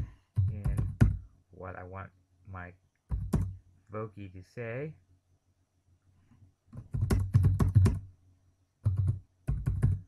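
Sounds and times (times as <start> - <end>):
typing on computer keyboard: 6.8 - 8.0, 8.8 - 10.0.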